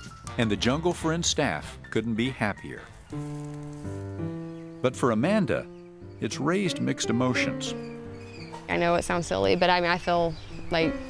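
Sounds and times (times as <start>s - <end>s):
sustained chords music: 3.2s - 9.7s
narrator speaking: 4.9s - 7.8s.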